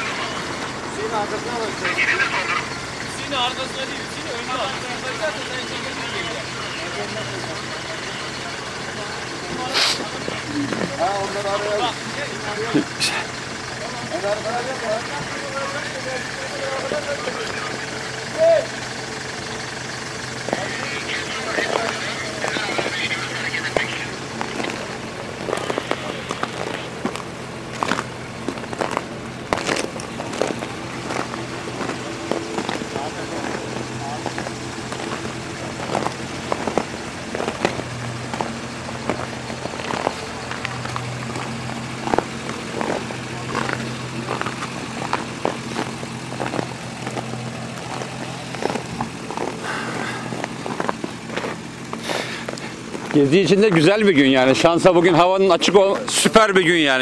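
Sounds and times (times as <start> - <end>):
indistinct voices: 0.0 - 57.0
vehicle engines idling: 0.0 - 57.0.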